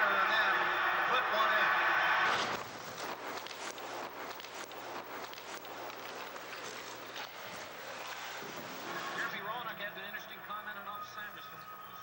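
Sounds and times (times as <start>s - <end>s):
skates scraping on ice: 1.3s - 9.4s.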